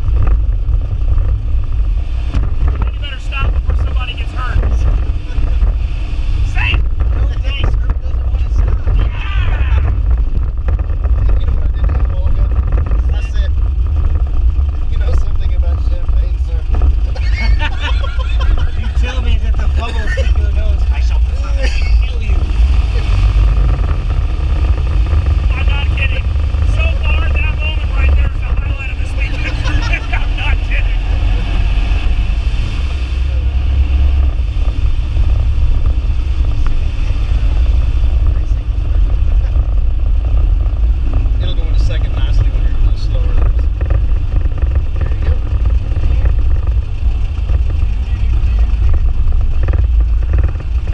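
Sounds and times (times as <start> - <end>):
car engine low rumble: 0.0 - 50.9
people laughing: 5.1 - 5.8, 17.1 - 20.7, 21.4 - 22.2, 28.8 - 31.5.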